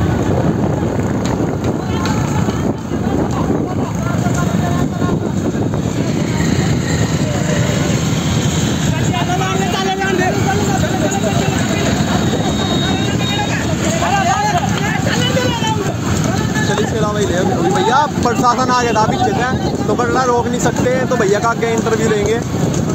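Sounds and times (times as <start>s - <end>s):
motorcycle engines running: 0.0s - 22.9s
wind and road noise: 0.0s - 22.9s
men shouting: 3.8s - 22.3s.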